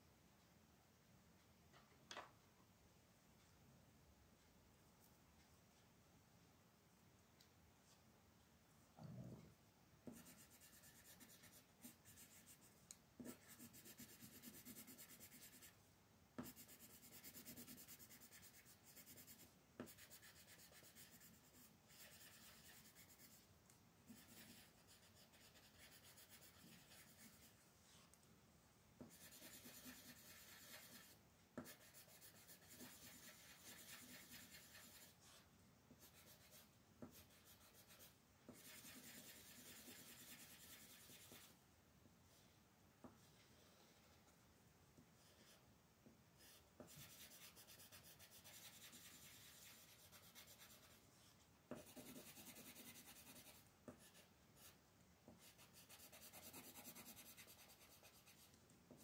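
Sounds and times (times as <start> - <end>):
pencil scratching on paper: 10.0 - 15.8, 16.4 - 23.4, 24.1 - 28.1, 29.0 - 41.6, 45.2 - 45.6, 46.4 - 59.0.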